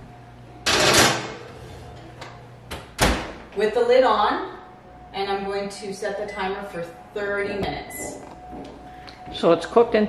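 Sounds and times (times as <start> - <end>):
pot scraping onto oven rack: 0.7 - 2.2
oven door shutting with knock: 2.7 - 3.5.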